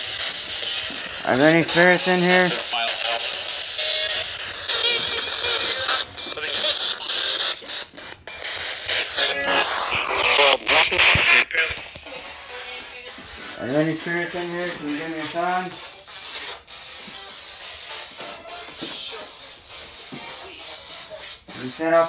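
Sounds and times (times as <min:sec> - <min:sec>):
radio static bursts: 0:00.0 - 0:22.0
snippets of radio music: 0:00.0 - 0:22.0
snippets of radio voices: 0:00.0 - 0:22.0.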